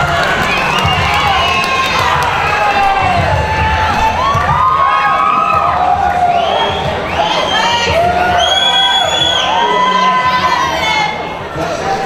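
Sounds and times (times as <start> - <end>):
crowd cheering and yelling: 0.0 - 12.0
long drawn-out shouts: 7.1 - 12.0.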